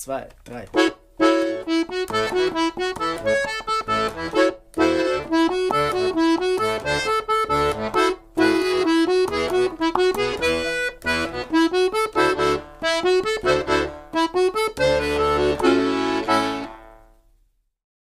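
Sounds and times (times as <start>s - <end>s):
accordion playing lively tune: 0.7s - 17.1s.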